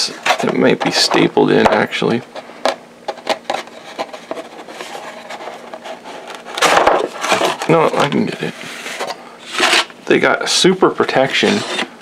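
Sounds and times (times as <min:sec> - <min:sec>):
cardboard being handled: 0:03.1 - 0:09.9.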